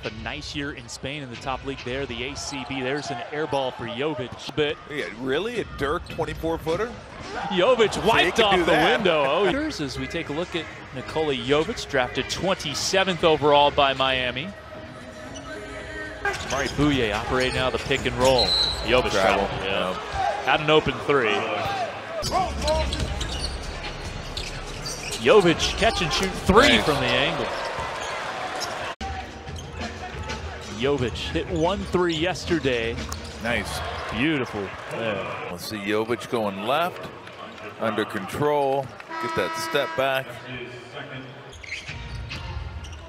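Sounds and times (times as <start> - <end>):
murmur of arena crowd: 0.0 - 43.0.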